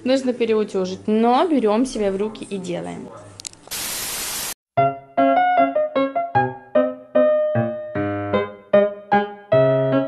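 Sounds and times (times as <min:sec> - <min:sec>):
white-noise static burst: 0:03.7 - 0:04.6
piano music: 0:04.8 - 0:10.0.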